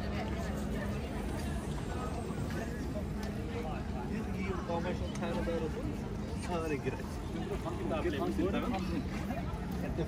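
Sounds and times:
passersby talking: 0.0 - 10.0.

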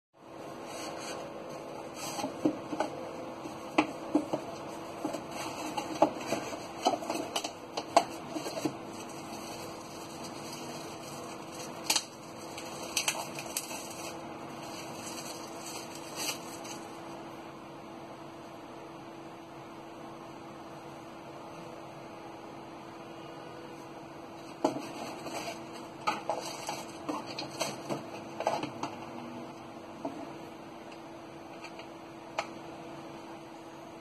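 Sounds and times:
steady hum: 0.2 - 34.0
plastic wrapping rustling: 0.6 - 17.0, 24.4 - 28.8.

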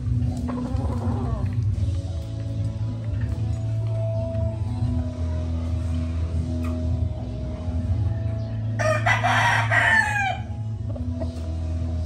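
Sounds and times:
background music: 0.0 - 12.0
rooster crowing: 8.8 - 10.5.

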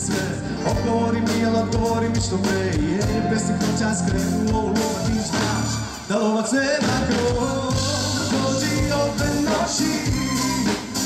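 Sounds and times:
man singing into a microphone: 0.0 - 10.9.

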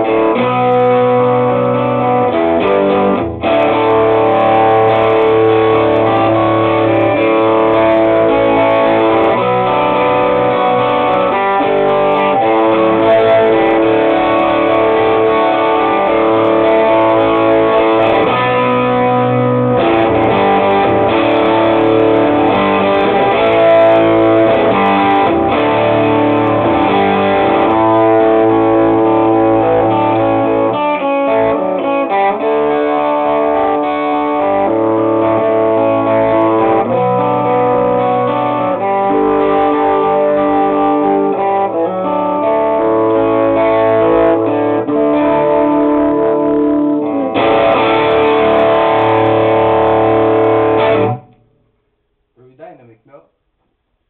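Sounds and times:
distorted electric guitar: 0.0 - 51.7.

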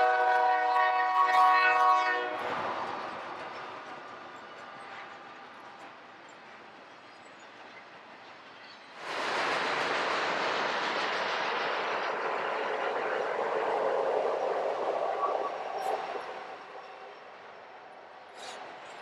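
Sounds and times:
freight train wheels on rail: 0.0 - 19.0.

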